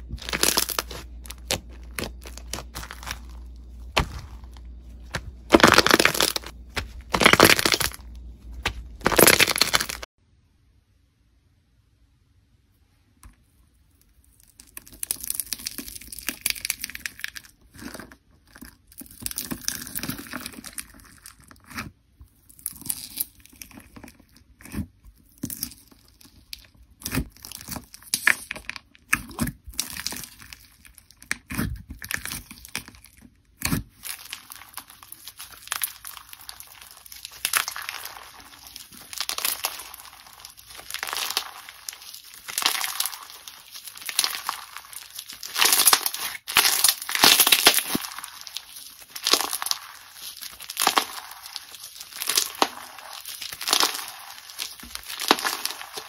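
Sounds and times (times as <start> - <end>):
foam-bead slime crackling: 0.0 - 10.1, 32.0 - 56.0.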